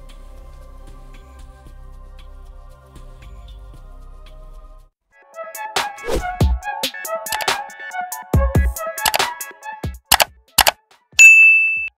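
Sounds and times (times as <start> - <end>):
double mouse-click sound effects: 7.3 - 7.5, 9.0 - 9.3, 10.1 - 10.8
notification bell ding: 11.2 - 12.0.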